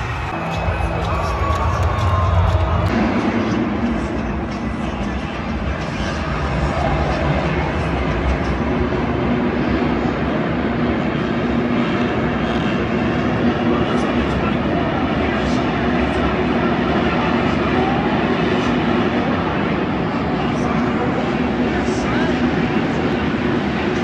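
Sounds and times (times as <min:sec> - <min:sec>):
crowd noise: 0:00.0 - 0:24.0.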